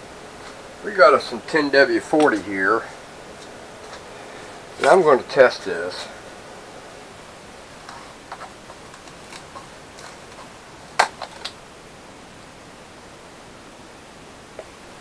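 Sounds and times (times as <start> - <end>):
low hiss of room tone: 0.0 - 15.0.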